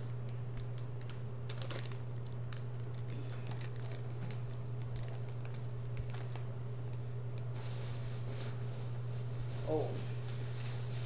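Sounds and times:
steady low hum: 0:00.0 - 0:11.0
plastic packaging crinkling: 0:00.5 - 0:08.2.

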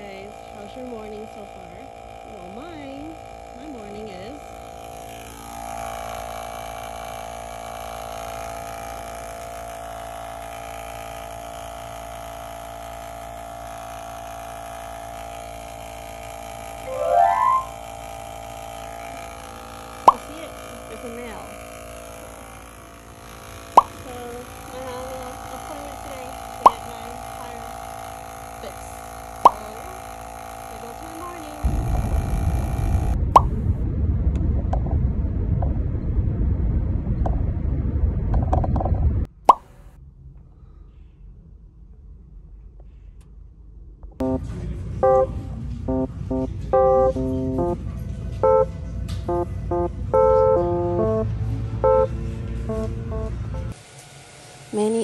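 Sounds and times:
tire inflator humming: 0:00.0 - 0:33.6, 0:48.4 - 0:55.0
plucked-string background music: 0:16.9 - 0:17.7
van rumbling on the road: 0:44.2 - 0:53.8.

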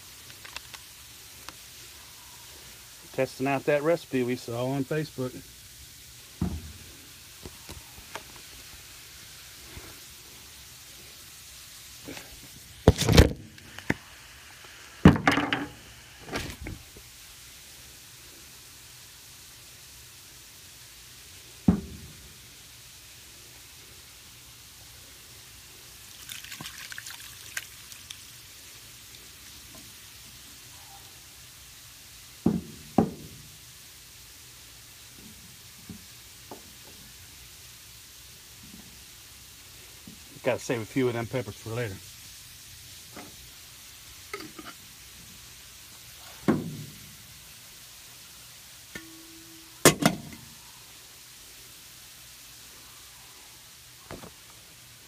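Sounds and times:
brine and peppers pouring: 0:00.0 - 0:17.2, 0:21.1 - 0:34.3, 0:35.0 - 0:50.6.

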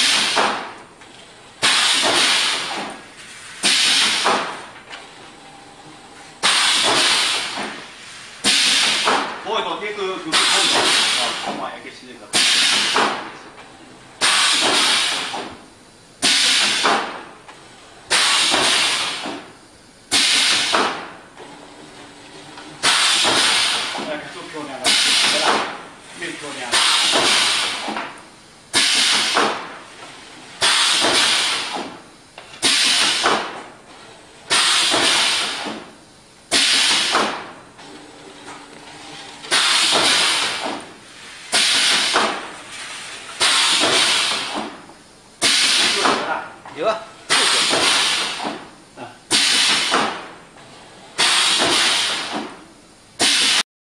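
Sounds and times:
compressed air hiss: 0:01.6 - 0:04.4, 0:06.4 - 0:09.2, 0:12.3 - 0:13.2, 0:14.2 - 0:15.4, 0:16.2 - 0:17.0, 0:18.1 - 0:19.4, 0:20.1 - 0:20.9, 0:22.8 - 0:24.1, 0:24.8 - 0:25.6, 0:26.2 - 0:28.0, 0:28.7 - 0:29.6, 0:30.6 - 0:32.0, 0:32.6 - 0:33.4, 0:34.5 - 0:35.8, 0:36.5 - 0:37.4, 0:39.5 - 0:44.8, 0:45.4 - 0:46.2, 0:47.3 - 0:48.5, 0:49.3 - 0:50.1, 0:51.2 - 0:52.4, 0:53.2 - 0:53.6.

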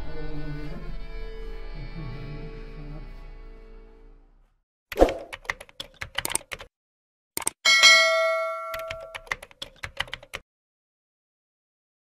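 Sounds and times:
quick clicks: 0:04.9 - 0:06.7, 0:07.4 - 0:07.6
notification bell ding: 0:07.7 - 0:09.4.

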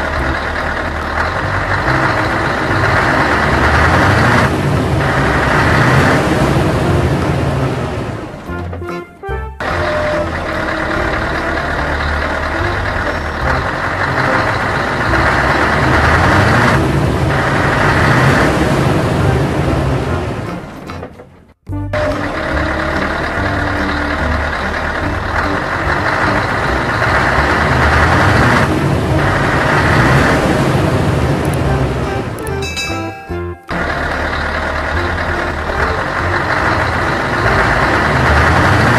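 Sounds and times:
heavy vehicle engine running: 0:00.0 - 0:38.9.

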